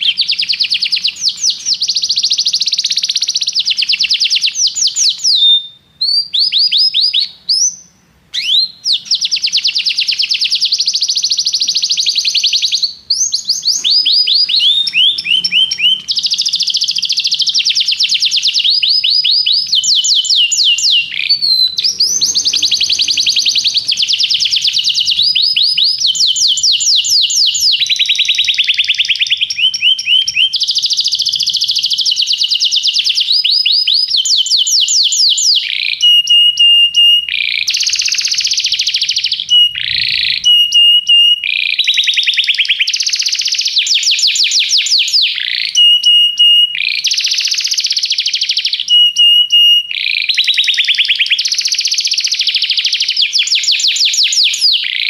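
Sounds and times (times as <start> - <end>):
canary singing trills: 0.0 - 55.0.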